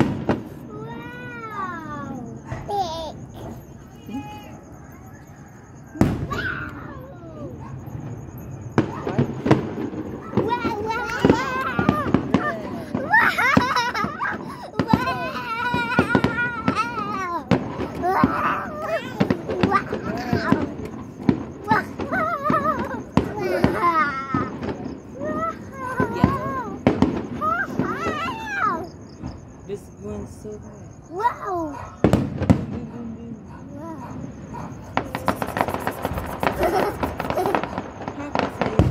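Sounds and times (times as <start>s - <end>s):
fireworks bangs and pops: 0.0s - 4.3s, 5.9s - 30.6s, 31.9s - 38.9s
high-pitched voices calling out: 8.8s - 13.4s, 14.1s - 29.3s.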